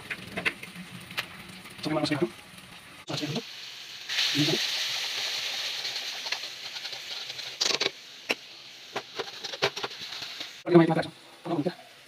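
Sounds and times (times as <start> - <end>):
food sizzling in hot oil: 0.0 - 12.0.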